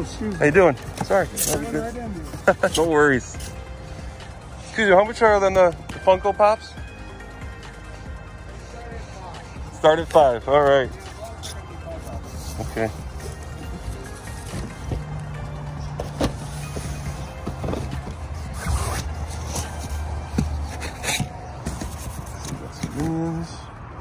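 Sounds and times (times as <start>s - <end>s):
cardboard boxes handled: 0.0s - 3.6s, 10.9s - 15.3s, 15.9s - 23.5s.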